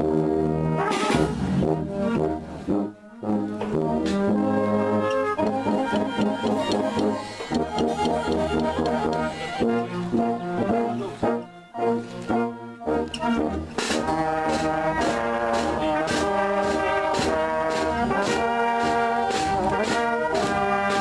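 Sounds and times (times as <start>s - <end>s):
brass wind band playing: 0.0s - 21.0s.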